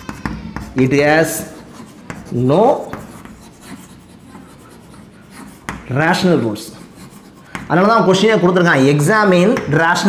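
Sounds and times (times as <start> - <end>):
chalk scratching on chalkboard: 0.0 - 8.0.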